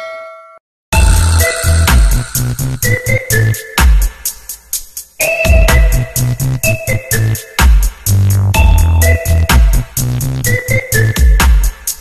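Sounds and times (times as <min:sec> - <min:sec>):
bright bell-like chime: 0:00.0 - 0:02.7
electronic music with heavy bass: 0:01.0 - 0:12.0.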